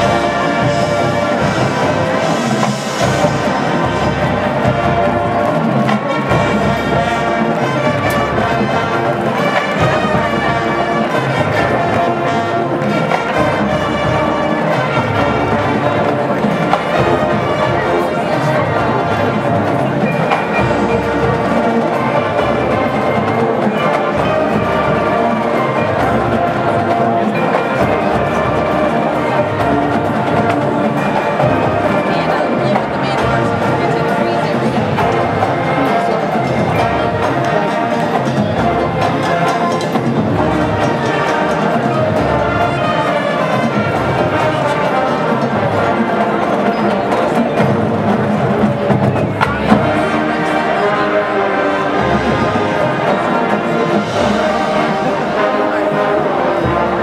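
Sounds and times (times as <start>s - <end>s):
marching band playing: 0.0s - 57.0s.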